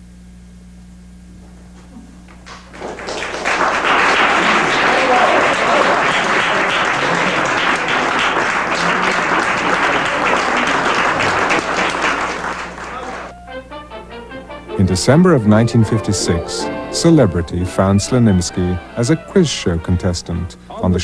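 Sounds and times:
audience applauding: 2.3s - 13.3s.

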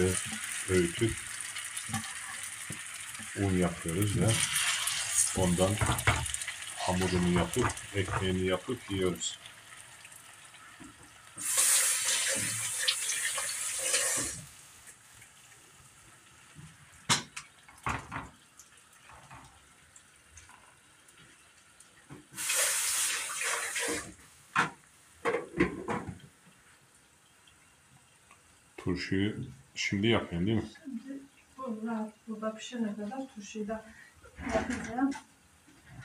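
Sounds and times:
kitchen tap running: 0.0s - 15.7s, 16.4s - 26.6s.

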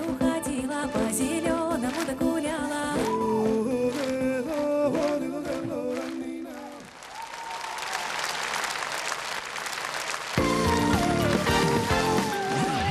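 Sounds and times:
tv theme music: 0.0s - 6.5s, 10.4s - 12.9s
studio audience applauding: 1.8s - 12.9s.

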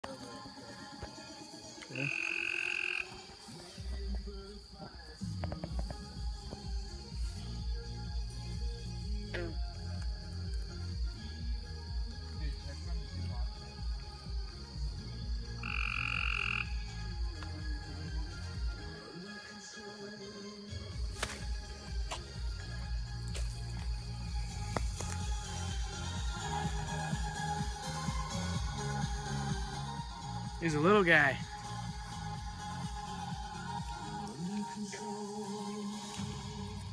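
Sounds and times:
frogs croaking: 0.0s - 36.1s
background music: 0.0s - 36.9s.

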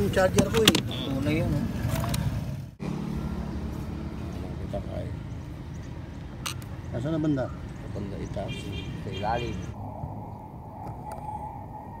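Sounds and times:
vehicle engine rumbling: 0.0s - 12.0s.

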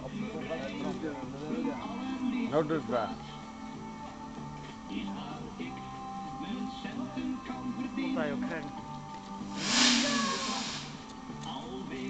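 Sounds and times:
firework hissing: 9.4s - 11.1s.

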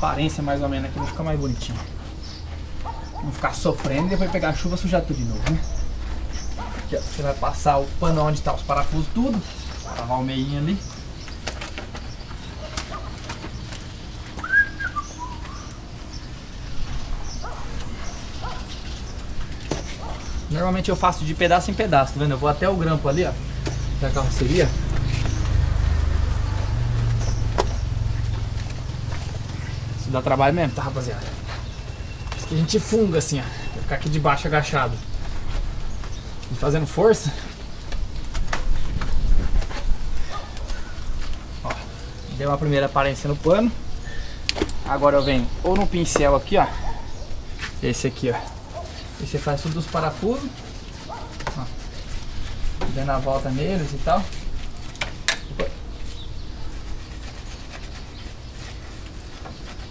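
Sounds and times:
high rising and falling chirp: 13.4s - 35.1s.

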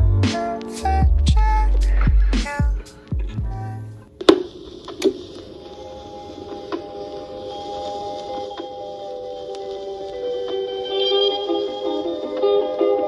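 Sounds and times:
music: 0.0s - 13.0s
record playing softly with ticks: 0.0s - 13.0s.

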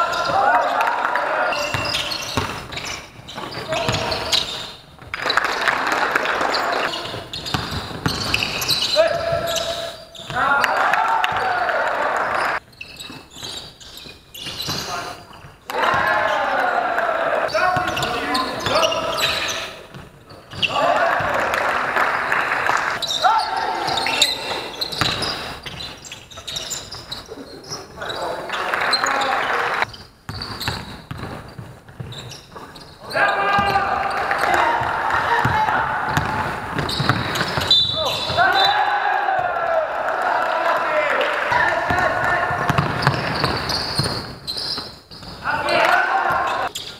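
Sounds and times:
basketball bouncing on court: 1.6s - 5.2s, 6.5s - 10.5s, 14.4s - 16.4s, 23.9s - 27.2s, 29.9s - 32.9s, 33.5s - 39.6s, 41.5s - 45.4s.

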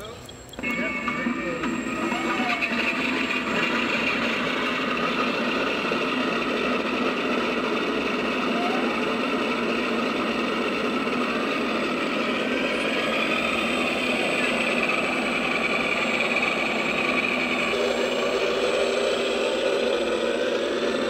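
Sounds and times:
model plane propellers whirring: 0.0s - 21.0s.

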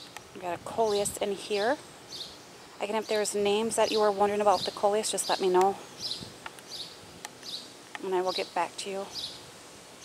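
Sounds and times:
small bird chirping: 0.0s - 9.4s.

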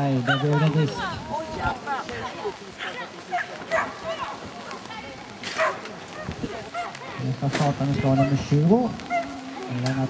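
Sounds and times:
dog barking: 3.3s - 4.0s, 5.6s - 7.0s.

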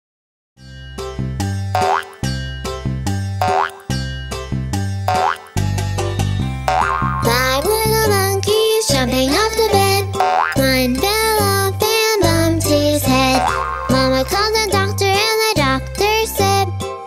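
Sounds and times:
bouncy children's song instrumental: 0.6s - 17.0s
cartoon boing sounds: 1.8s - 2.2s, 3.4s - 3.9s, 5.1s - 5.5s, 6.7s - 7.5s, 10.1s - 10.6s, 13.3s - 14.2s.

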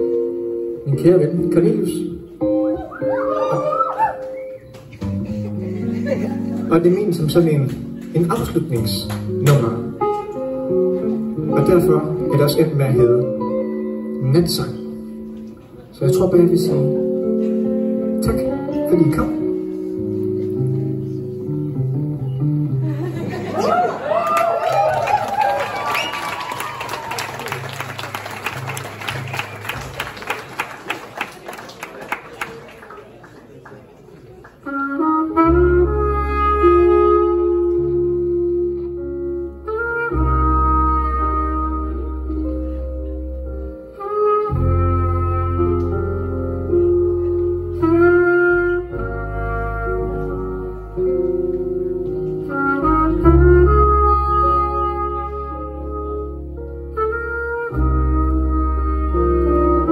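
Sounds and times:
audience applause: 23.5s - 34.6s.

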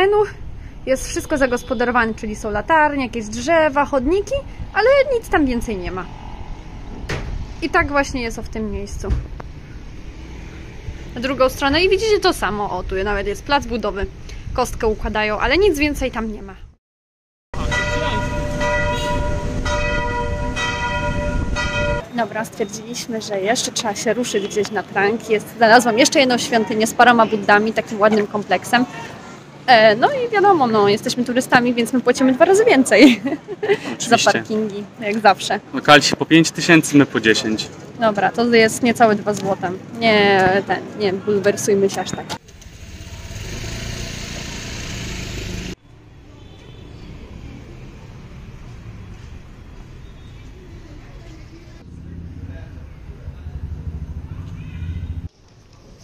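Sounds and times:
road traffic: 0.0s - 16.8s, 17.6s - 56.0s
church bell tolling: 17.6s - 22.0s
motorbike engine: 42.4s - 45.8s
car engine: 42.4s - 45.9s, 51.8s - 55.3s
low steady rumble: 51.8s - 55.3s.

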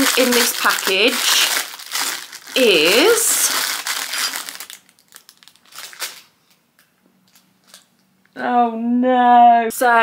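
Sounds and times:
plastic bag crinkling: 0.0s - 6.6s, 7.2s - 8.0s.

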